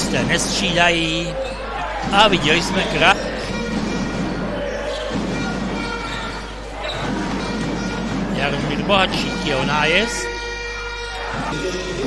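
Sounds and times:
basketball bouncing on court: 0:00.0 - 0:11.6
brass band sustained notes: 0:00.0 - 0:12.0
crowd noise: 0:00.0 - 0:12.0.

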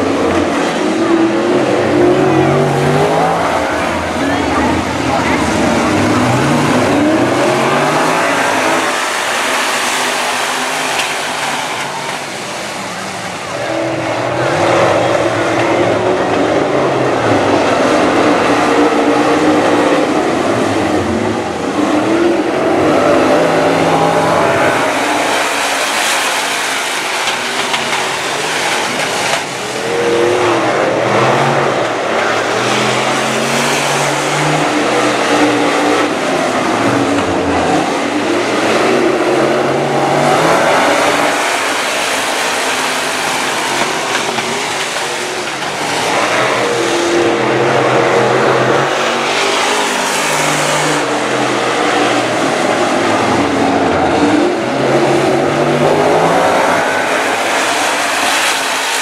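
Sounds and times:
stock car engines revving: 0:00.0 - 0:59.0.

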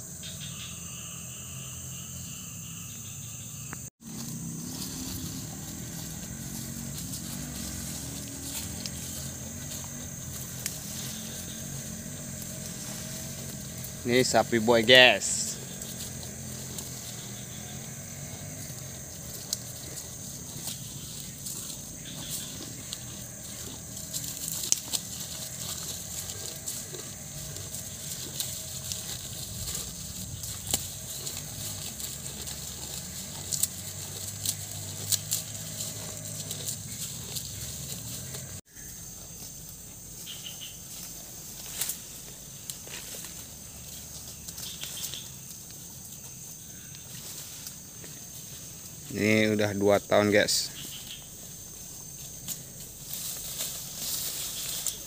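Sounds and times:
high insect drone: 0:00.0 - 0:55.0
bull chewing grass: 0:04.0 - 0:49.1, 0:50.4 - 0:55.0.

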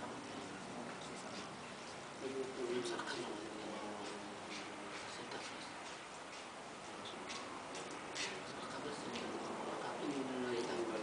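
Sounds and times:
background hiss: 0:00.0 - 0:11.0
faint irregular clicks: 0:04.0 - 0:10.8.

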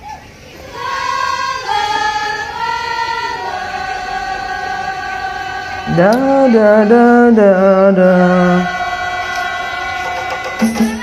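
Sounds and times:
women singing long held notes: 0:00.6 - 0:11.0.

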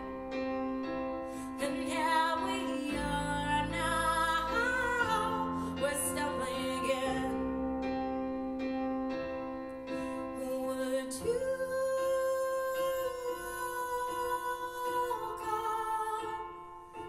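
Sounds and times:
electric keyboard: 0:00.0 - 0:17.0.

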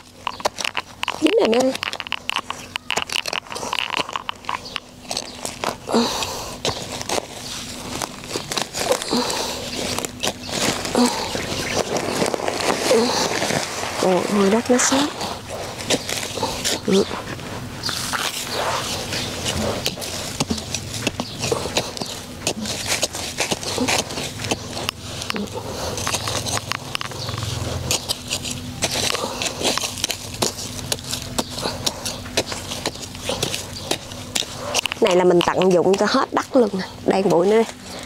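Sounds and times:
hand hoe chopping dry soil: 0:00.0 - 0:38.0.

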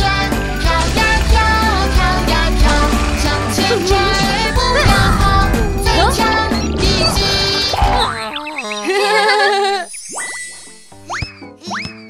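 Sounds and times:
children's background music: 0:00.0 - 0:12.0
rising cartoon glide: 0:03.2 - 0:09.1.

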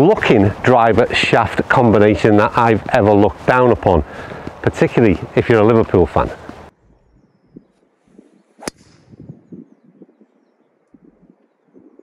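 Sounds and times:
golf club striking ball: 0:08.6 - 0:09.0.

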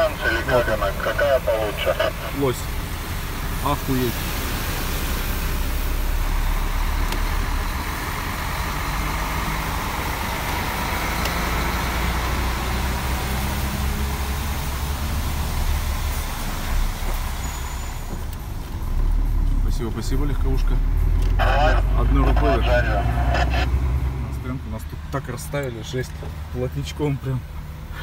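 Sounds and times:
truck engine drone: 0:00.0 - 0:28.0
tyre and road noise: 0:00.0 - 0:28.0.

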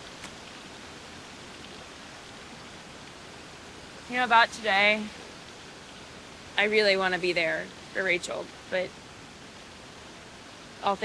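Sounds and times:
outdoor water hiss: 0:00.0 - 0:11.0.

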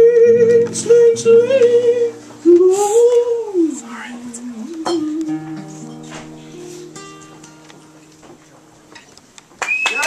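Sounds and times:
acoustic guitar chord: 0:00.0 - 0:09.4
audience clapping: 0:09.4 - 0:10.0
audience whistling: 0:09.6 - 0:10.0.

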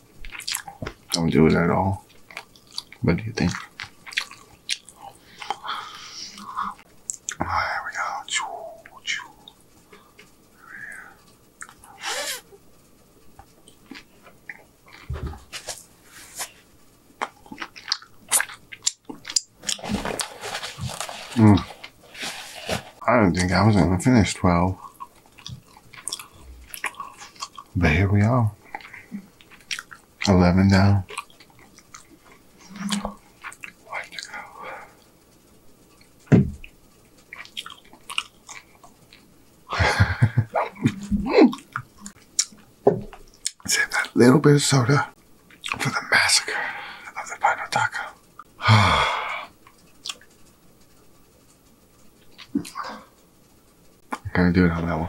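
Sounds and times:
man chewing: 0:00.2 - 0:01.2, 0:02.1 - 0:07.4, 0:08.6 - 0:12.5, 0:13.2 - 0:16.5, 0:17.2 - 0:23.0, 0:24.8 - 0:27.8, 0:28.6 - 0:30.3, 0:31.1 - 0:35.1, 0:35.8 - 0:39.4, 0:40.1 - 0:43.7, 0:49.5 - 0:53.4
wet chewing and mouth smacks: 0:00.2 - 0:01.2, 0:02.1 - 0:05.6, 0:17.2 - 0:19.8, 0:24.8 - 0:27.7, 0:28.7 - 0:30.0, 0:36.0 - 0:39.3, 0:41.5 - 0:42.7, 0:49.6 - 0:50.4.

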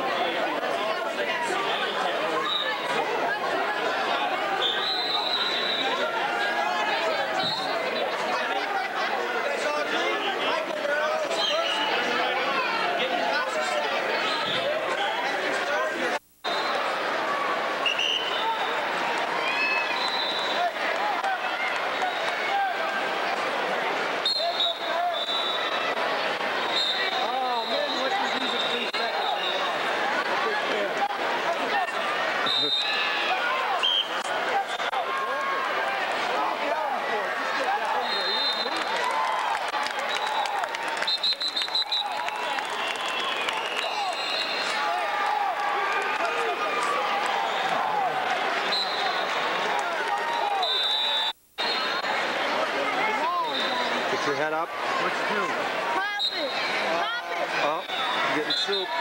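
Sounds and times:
crowd chatter: 0:00.0 - 0:59.0.

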